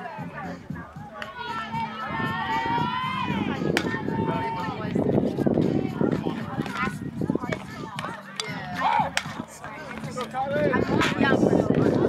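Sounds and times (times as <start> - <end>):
people shouting: 1.2 - 4.9, 7.7 - 9.4.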